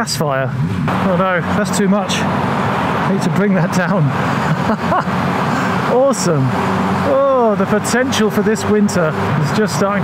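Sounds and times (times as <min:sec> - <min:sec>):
motorcycle engine cruising: 0:00.0 - 0:10.0
road and wind noise: 0:00.0 - 0:10.0.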